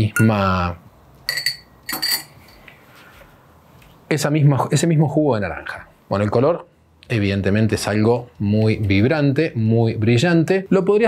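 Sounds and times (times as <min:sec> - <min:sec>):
metal spoon clinking on glass: 0:01.3 - 0:02.5.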